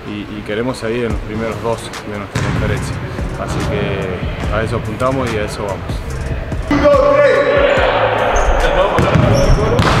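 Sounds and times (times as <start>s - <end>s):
players' voices: 0.0s - 10.0s
basketballs bouncing on hardwood: 2.3s - 2.7s, 9.0s - 10.0s.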